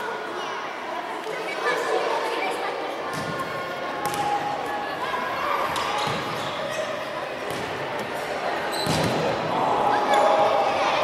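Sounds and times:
people shouting: 9.5 - 11.0.

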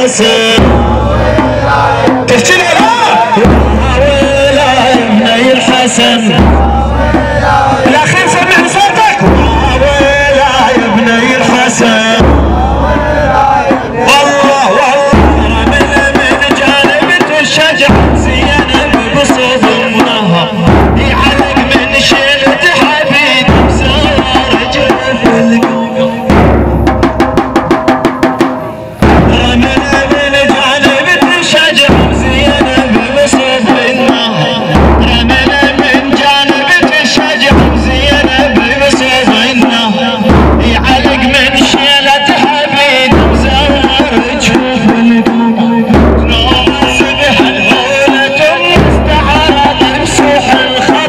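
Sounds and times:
man chanting a lament: 0.0 - 26.5, 29.1 - 51.0
bass drum beating steadily: 0.0 - 51.0.

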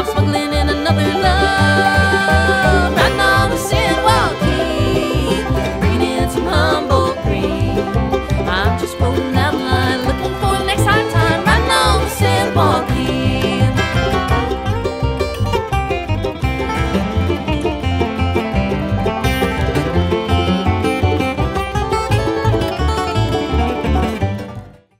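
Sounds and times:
acoustic guitar picked notes: 0.0 - 24.9
bluegrass band playing: 0.0 - 24.9.

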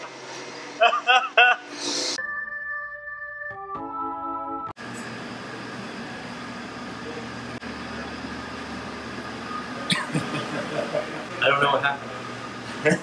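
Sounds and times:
kitchen equipment and fans humming: 4.8 - 13.0.

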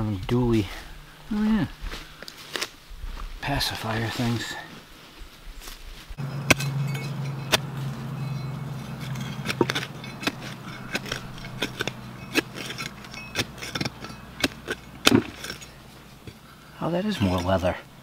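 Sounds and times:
low hum: 6.2 - 16.8
hand tools digging stony dirt: 6.2 - 17.8.

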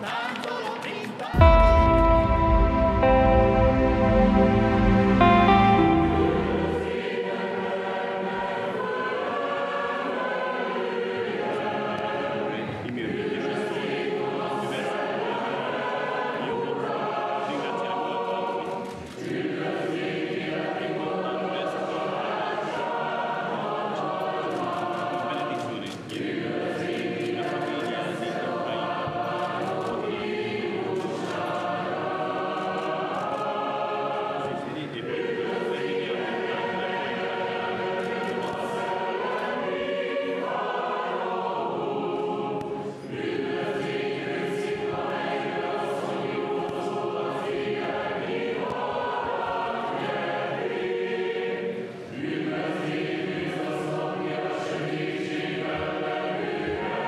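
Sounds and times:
choir singing liturgical chant: 0.0 - 57.0.

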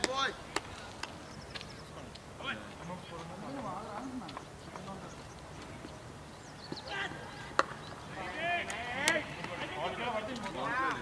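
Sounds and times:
distant players' voices: 0.0 - 11.0.

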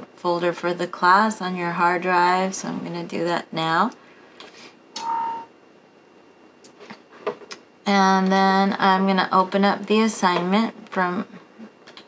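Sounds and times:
electronic alert tone: 5.0 - 5.5.

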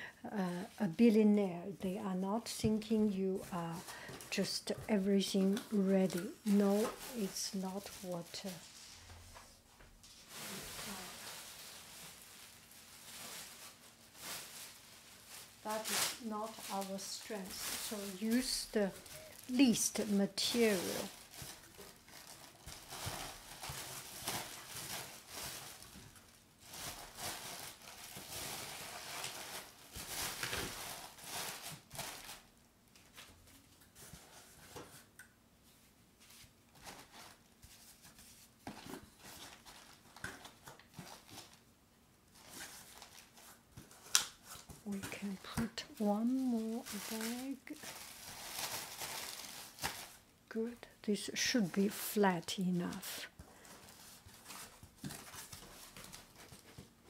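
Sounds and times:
plastic packing crinkling: 3.4 - 9.4, 10.0 - 35.2, 36.3 - 41.7, 42.3 - 57.0
paper rustling: 42.4 - 50.2.

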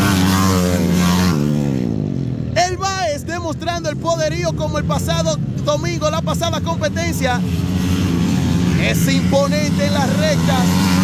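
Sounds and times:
dirt bike racing past: 0.0 - 2.6, 3.9 - 11.0.

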